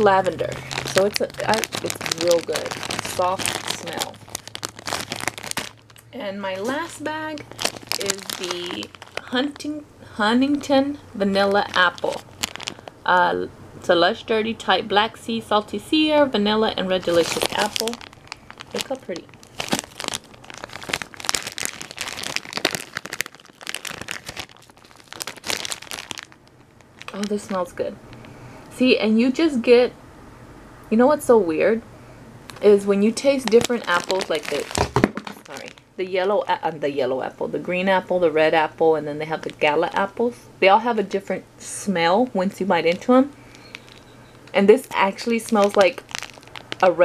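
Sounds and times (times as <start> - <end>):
plastic bag crinkling: 0.0 - 13.2, 16.7 - 28.4, 32.5 - 36.7, 42.8 - 47.0.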